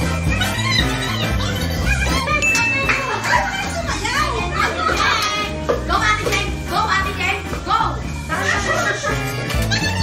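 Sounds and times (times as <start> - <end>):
women shouting and cheering: 2.4 - 5.6.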